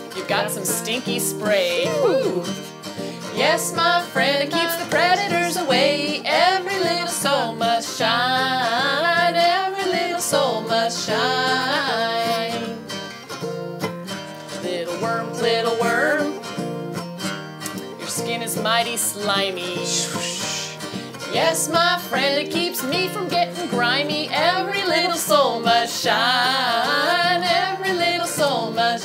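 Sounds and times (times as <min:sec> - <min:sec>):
woman singing: 0:00.0 - 0:13.0, 0:14.5 - 0:16.5, 0:18.0 - 0:29.0
strummed acoustic guitar: 0:00.0 - 0:29.0.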